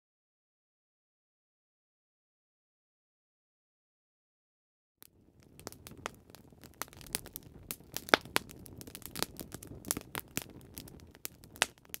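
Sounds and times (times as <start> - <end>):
wood fire crackling: 5.0 - 12.0.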